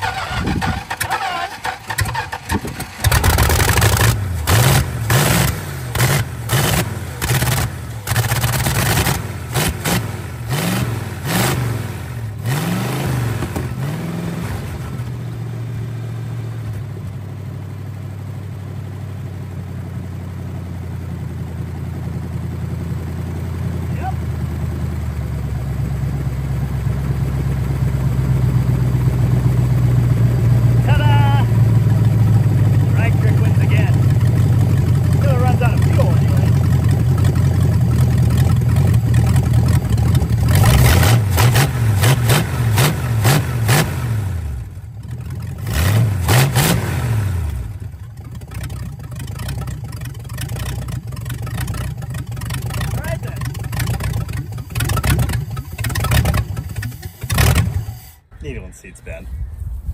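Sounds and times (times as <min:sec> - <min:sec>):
car engine revving unevenly: 0:02.8 - 0:16.8, 0:34.9 - 0:48.6, 0:52.5 - 0:58.1.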